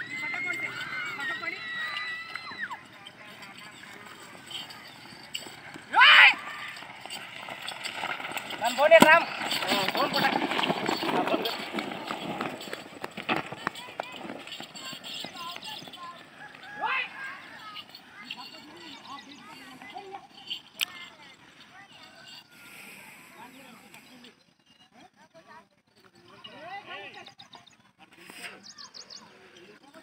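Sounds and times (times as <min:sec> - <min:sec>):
running footsteps on dirt: 0:00.0 - 0:22.6
stone sled dragging: 0:00.0 - 0:24.3, 0:27.2 - 0:30.0
hoofbeats on dirt track: 0:00.0 - 0:24.9
voices calling out: 0:00.0 - 0:30.0.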